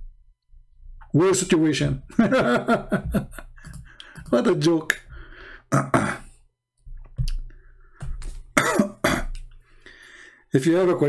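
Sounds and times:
man clearing throat: 5.7 - 6.4, 8.6 - 9.4
man coughing: 5.7 - 6.4, 8.6 - 9.4.

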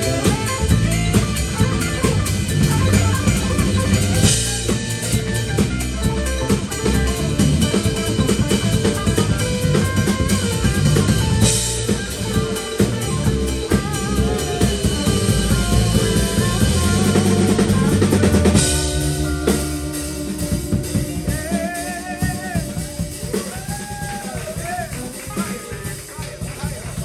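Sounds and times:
drum kit: 0.0 - 27.0
electric bass: 0.0 - 27.0
electric guitar: 0.0 - 27.0.

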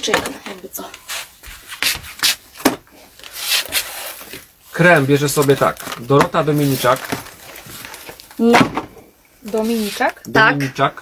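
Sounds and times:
cardboard boxes scraping: 9.4 - 10.1.

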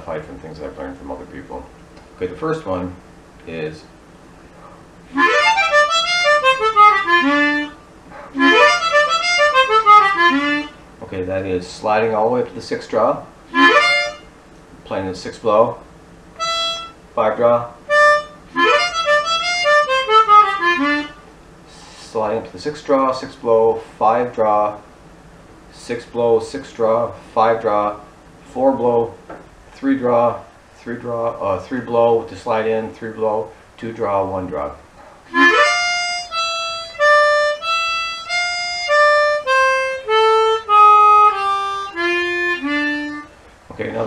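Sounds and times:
harmonica blues lick: 5.1 - 10.8, 13.5 - 14.3, 16.4 - 17.3, 17.9 - 21.9, 35.3 - 43.4.

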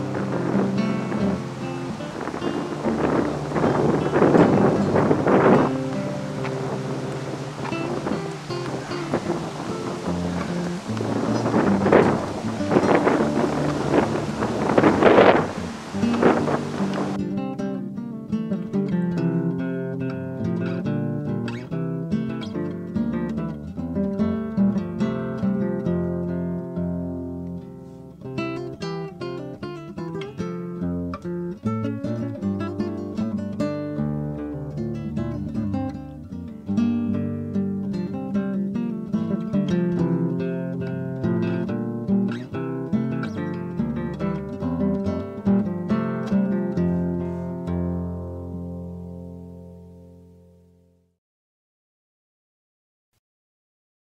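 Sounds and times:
plucked acoustic guitar: 0.0 - 50.7.

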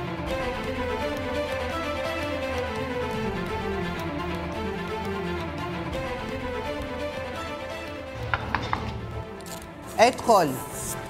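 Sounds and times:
knocks on wooden door: 8.3 - 9.0.

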